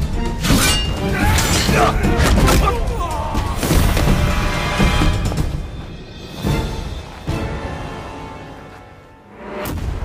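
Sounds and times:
dramatic orchestral score: 0.0s - 10.0s
fighters shouting and grunting: 0.9s - 4.2s.

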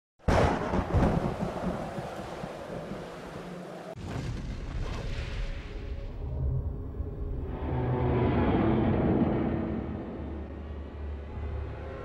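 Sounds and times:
thunder rolling: 0.3s - 5.9s.

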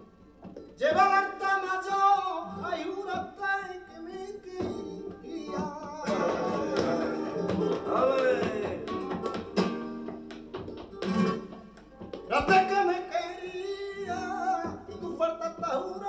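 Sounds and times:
flamenco guitar strummed: 0.0s - 16.0s
man singing: 0.8s - 9.1s, 12.3s - 16.0s.

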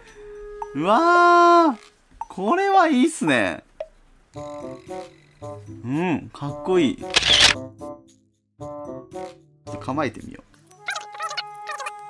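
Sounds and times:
background music: 0.0s - 2.5s, 4.3s - 12.0s
camera shutter: 7.1s - 7.6s.

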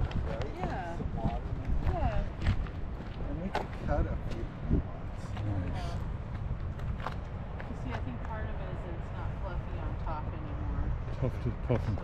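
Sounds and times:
steady low rumble: 0.0s - 12.0s
people talking indistinctly: 0.2s - 6.1s, 7.6s - 12.0s.

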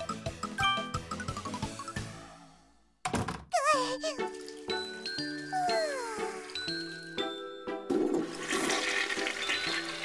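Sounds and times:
background music: 0.0s - 2.8s, 3.5s - 10.0s
toilet flushing: 7.9s - 10.0s.

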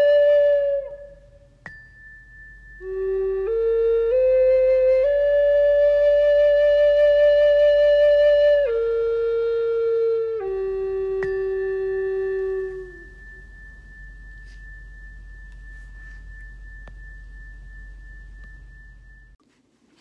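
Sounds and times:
solo wind instrument melody: 0.0s - 1.5s, 2.8s - 16.6s
faint steady high tone: 0.0s - 19.4s.

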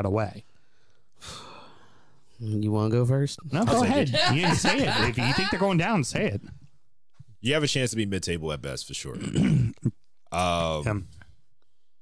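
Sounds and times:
person speaking: 3.4s - 6.5s.

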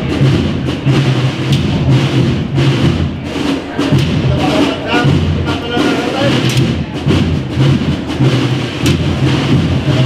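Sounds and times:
wind band playing a march: 0.0s - 10.0s.

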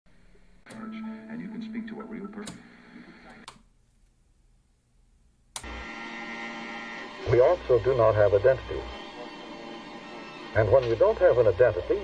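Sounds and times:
steady hum: 0.1s - 12.0s
music: 0.7s - 3.2s, 7.2s - 12.0s
recorded voice: 0.7s - 3.5s, 7.2s - 8.9s, 10.6s - 12.0s
sharp clicks: 3.4s - 3.7s.

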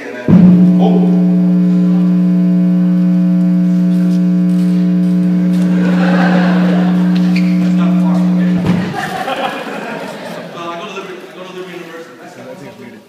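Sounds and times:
loud electrical buzz: 0.3s - 9.4s.

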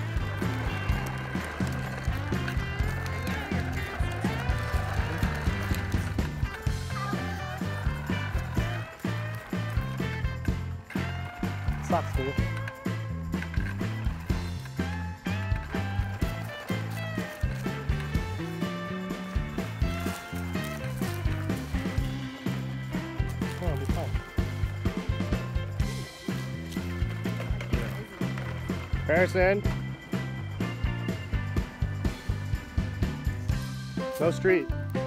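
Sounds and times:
stepping bass line: 0.0s - 33.7s
music with steady beat: 0.0s - 35.0s.

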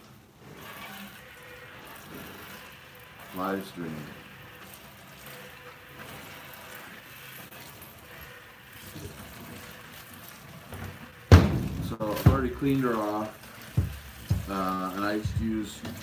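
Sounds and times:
milk squirting into plastic bucket: 0.5s - 16.0s
loud sharp thump: 11.3s - 12.5s.

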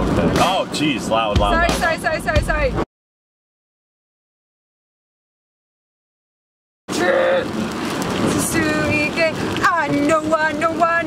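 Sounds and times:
road noise inside car: 0.0s - 2.8s, 6.9s - 11.0s
rain hissing: 6.9s - 11.0s
woman singing: 8.3s - 11.0s.

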